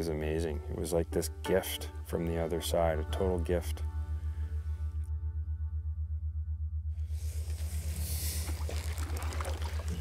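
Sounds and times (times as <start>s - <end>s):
water and wind hiss: 7.3s - 10.0s.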